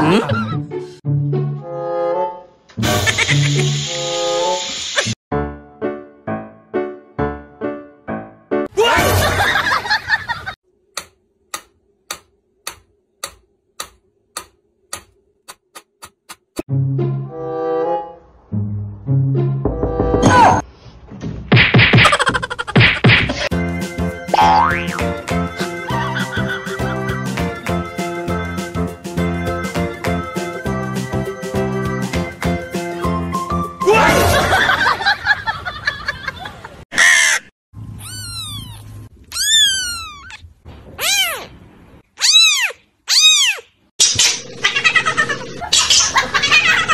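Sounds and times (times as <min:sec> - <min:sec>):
springy comedy boing: 0:24.4 - 0:25.1
kittens mewing: 0:37.0 - 0:41.5, 0:42.2 - 0:46.9.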